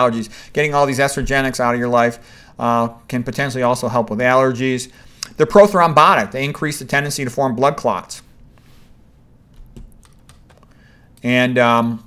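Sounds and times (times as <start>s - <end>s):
computer keys clicking: 9.5s - 10.7s.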